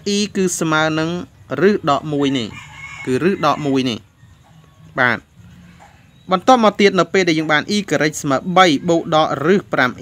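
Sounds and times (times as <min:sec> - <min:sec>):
man speaking: 0:00.0 - 0:04.2, 0:04.9 - 0:05.4, 0:06.2 - 0:10.0
rooster crowing: 0:02.0 - 0:06.2.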